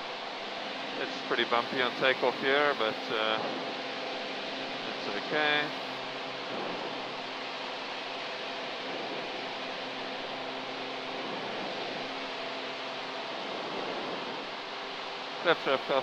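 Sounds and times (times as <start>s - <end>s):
propeller plane engine drone: 0.0s - 16.0s.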